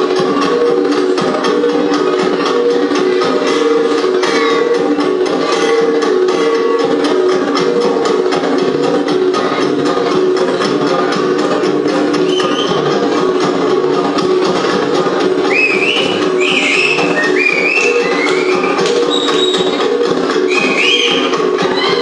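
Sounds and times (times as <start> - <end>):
gong ensemble music: 0.0 - 22.0
high rising whistles: 15.5 - 19.6, 20.5 - 21.3.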